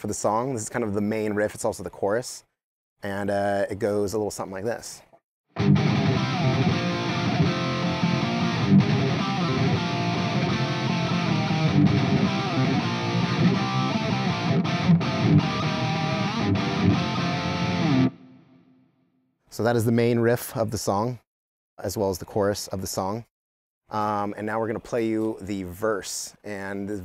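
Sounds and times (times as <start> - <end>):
distorted electric guitar riff: 5.6 - 18.8.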